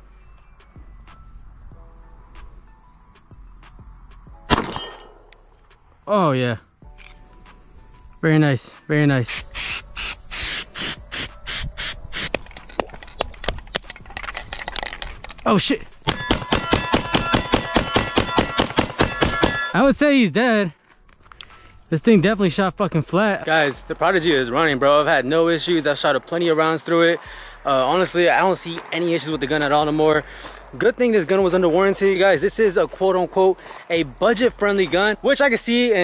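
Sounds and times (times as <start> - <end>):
pistol shot with echo: 4.5 - 5.3, 16.1 - 19.7
steel targets ringing: 4.5 - 5.3, 16.0 - 20.0.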